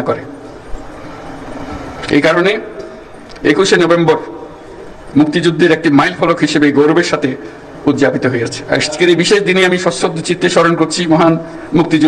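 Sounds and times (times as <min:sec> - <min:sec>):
man speaking into microphone: 0:00.0 - 0:00.3, 0:02.0 - 0:02.8, 0:03.4 - 0:12.0
background hush: 0:00.3 - 0:12.0.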